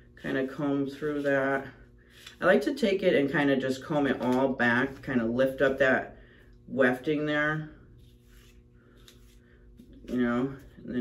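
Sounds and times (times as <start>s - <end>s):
comb brushing through hair: 8.0s - 10.9s.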